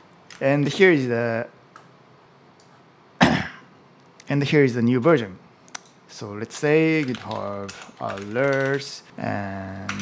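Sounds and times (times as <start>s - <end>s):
man coughing: 3.2s - 3.7s.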